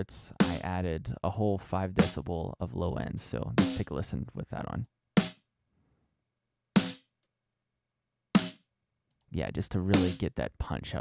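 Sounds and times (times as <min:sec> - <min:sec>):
snare drum hit: 0:06.8 - 0:07.0, 0:08.4 - 0:08.6.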